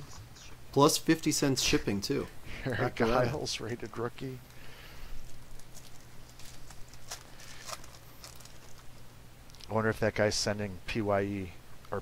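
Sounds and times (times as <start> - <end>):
steady low hum: 0.0 - 12.0
trading cards being handled: 5.1 - 9.8.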